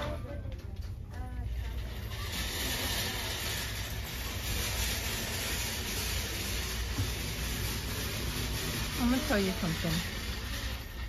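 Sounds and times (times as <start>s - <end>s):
crowded shop background noise: 0.0s - 11.0s.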